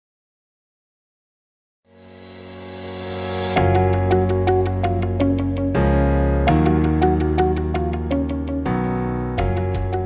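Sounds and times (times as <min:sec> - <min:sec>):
keyboard chords and repeated notes: 0:02.6 - 0:10.0.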